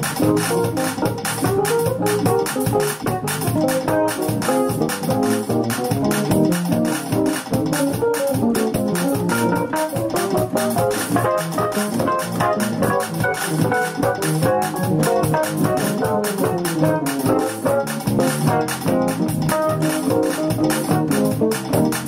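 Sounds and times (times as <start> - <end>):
electronic keyboard gospel chords: 0.0 - 22.0.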